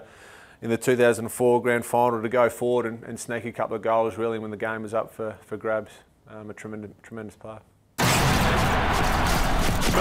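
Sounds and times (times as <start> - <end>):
stadium crowd noise: 8.5 - 10.0.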